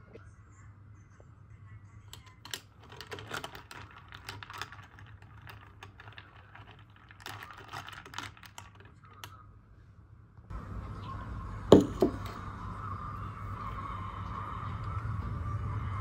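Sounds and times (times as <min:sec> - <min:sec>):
ice cubes clinking against glass: 0:02.2 - 0:09.3.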